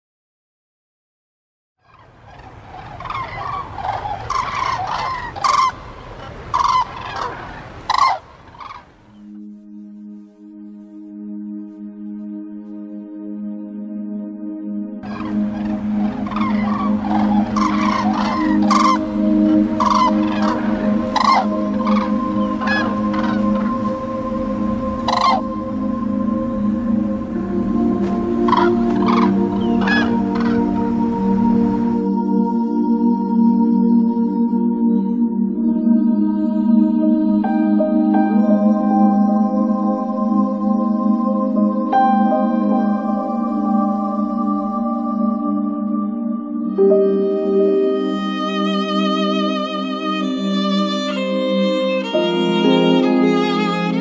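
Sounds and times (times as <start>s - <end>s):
waterbirds calling: 1.8s - 9.4s, 15.0s - 32.2s
soft ambient music: 1.9s - 7.3s, 7.9s - 54.0s.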